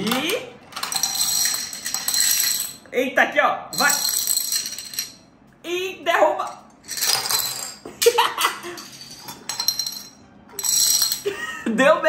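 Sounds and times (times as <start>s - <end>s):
plastic dominoes clattering on stone: 0.0s - 2.8s.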